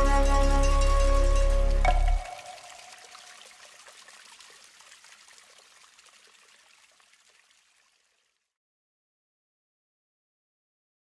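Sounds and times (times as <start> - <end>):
faint trickling water: 0.0 - 8.6.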